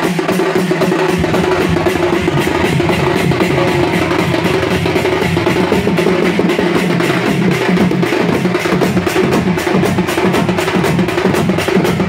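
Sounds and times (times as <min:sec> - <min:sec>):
driving drum rhythm: 0:00.0 - 0:12.0
sustained held tone: 0:01.1 - 0:07.1.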